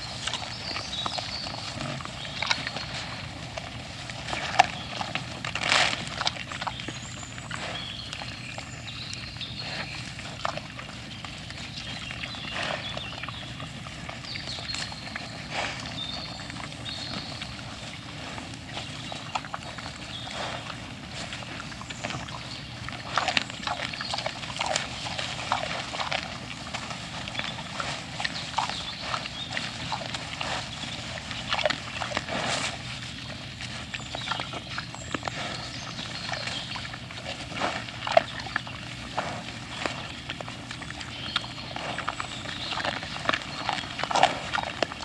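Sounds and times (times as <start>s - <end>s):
boar crunching and snapping: 0.0s - 45.0s.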